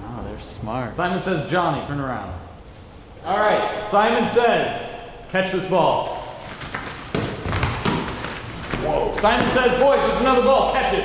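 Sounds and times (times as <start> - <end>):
feet landing on foam mats: 6.5 - 9.7.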